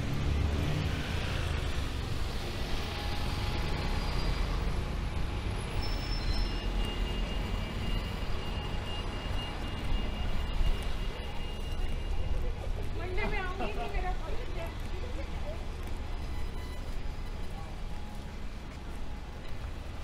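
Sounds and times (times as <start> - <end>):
cars passing: 0.0 - 20.0
traffic rumble: 0.0 - 20.0.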